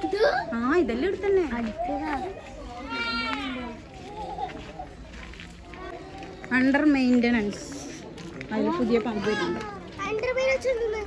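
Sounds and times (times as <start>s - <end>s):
child talking: 0.0s - 0.5s, 9.2s - 11.0s
other voices: 0.0s - 11.0s.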